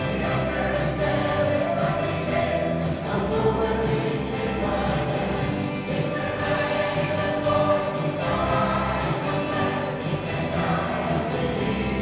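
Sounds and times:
live band playing: 0.0 - 12.0
mixed choir singing: 0.0 - 12.0.

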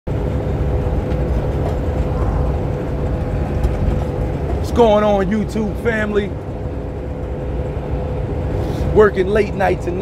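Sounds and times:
truck engine and road rumble: 0.1 - 10.0.

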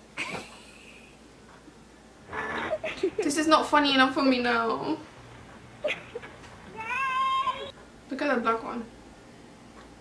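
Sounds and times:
cat meowing: 6.7 - 7.7.

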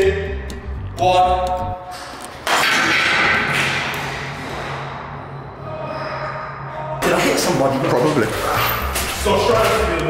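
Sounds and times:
object crashing down concrete stairwell: 2.5 - 4.6.

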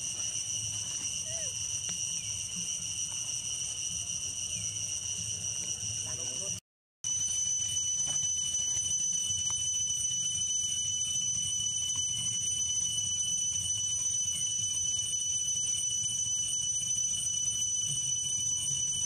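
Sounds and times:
insect chorus drone: 0.0 - 19.0.

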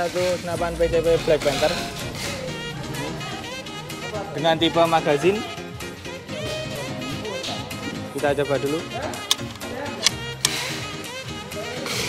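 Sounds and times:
background music: 0.0 - 12.0
air rifle bolt clicks: 9.3 - 10.7.

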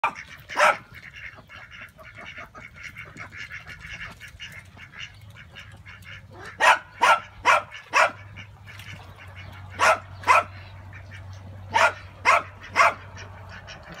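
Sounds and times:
ducks quacking: 0.0 - 14.0.

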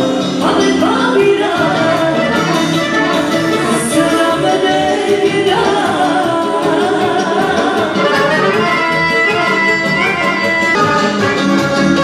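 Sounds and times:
woman singing into microphone: 0.0 - 10.1
live band dance music: 0.0 - 12.0
button accordion: 1.6 - 5.2, 7.5 - 12.0.

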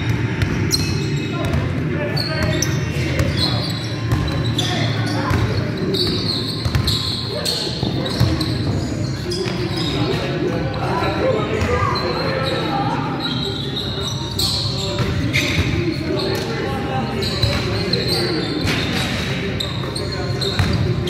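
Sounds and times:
players' voices echoing: 0.0 - 21.0
sneaker squeaks: 0.0 - 21.0
basketball bouncing: 6.6 - 7.0.

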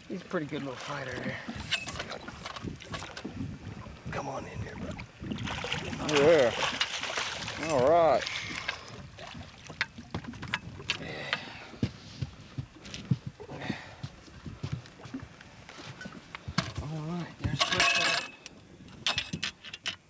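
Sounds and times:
person's wordless voice: 4.1 - 5.0, 16.8 - 18.3.

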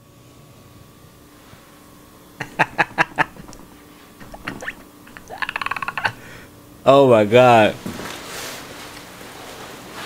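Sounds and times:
man laughing: 2.4 - 6.4.

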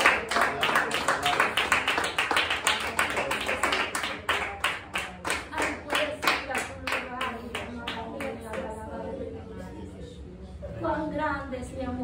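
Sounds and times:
people clapping in rhythm: 0.0 - 8.7.

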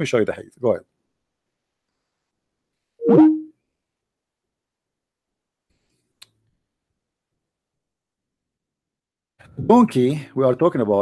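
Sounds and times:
electronic notification sound: 3.0 - 3.5
faint click: 5.7 - 6.4.

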